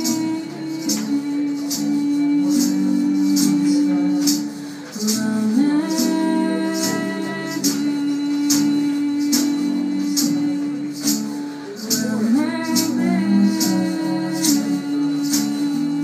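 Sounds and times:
hand percussion beat: 0:00.0 - 0:16.0
people singing in harmony: 0:00.0 - 0:16.0
strummed acoustic guitar: 0:00.0 - 0:16.0.

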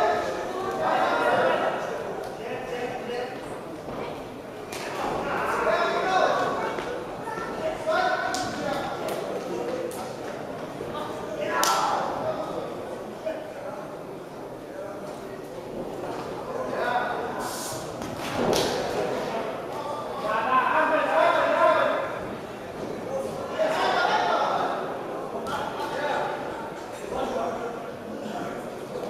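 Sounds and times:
voices shouting in a hall: 0:00.0 - 0:03.4, 0:04.7 - 0:09.6, 0:16.4 - 0:28.8.

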